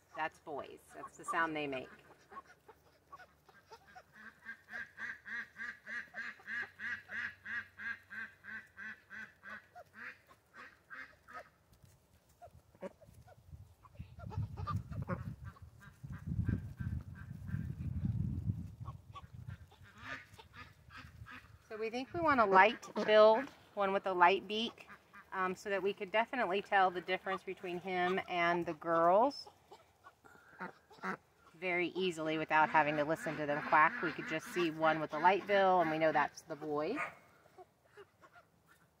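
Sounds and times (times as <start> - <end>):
ducks quacking softly: 0.0 - 11.6, 12.3 - 18.0, 18.8 - 39.0.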